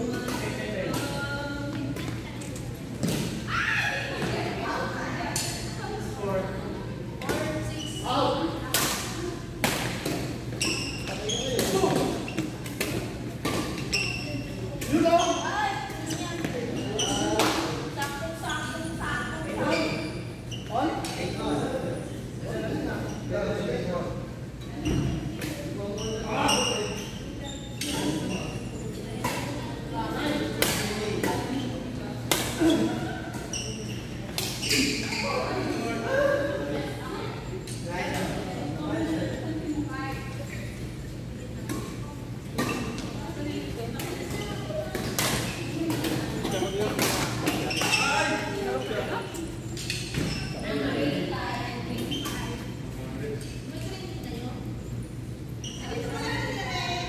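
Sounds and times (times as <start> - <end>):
voices around: 0.0 - 57.0.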